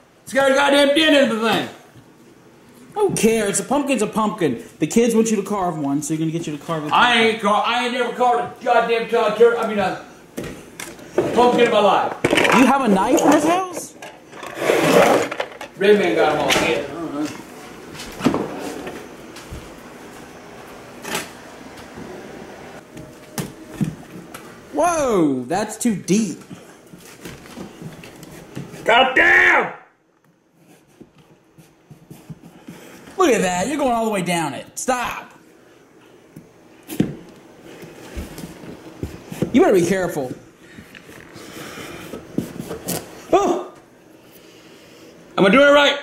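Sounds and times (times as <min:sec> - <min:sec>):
dishwasher rack scrape: 0:12.6 - 0:15.6.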